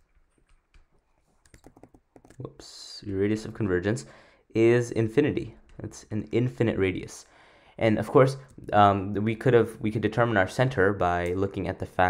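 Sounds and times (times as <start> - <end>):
stylus tapping on a tablet: 0.3 - 2.4.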